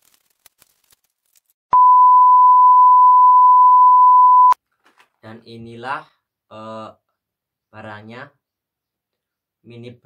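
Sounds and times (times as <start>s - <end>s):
steady electronic beep: 1.8s - 4.6s.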